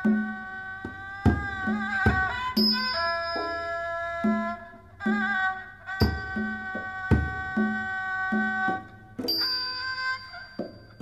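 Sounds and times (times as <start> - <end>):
high-pitched bowed fiddle: 1.8 - 11.0.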